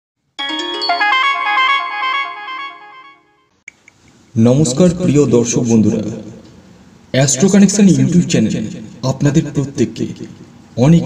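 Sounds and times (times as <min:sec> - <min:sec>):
electronic chime melody: 0:00.4 - 0:03.5.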